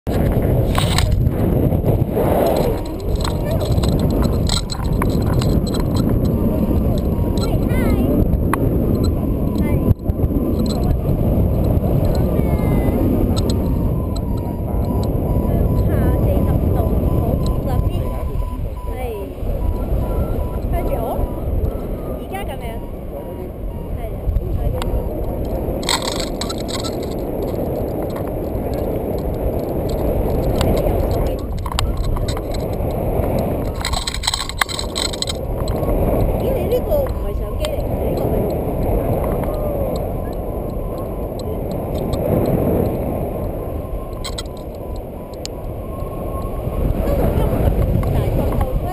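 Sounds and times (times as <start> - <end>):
wind buffeting microphone: 0.0 - 48.9.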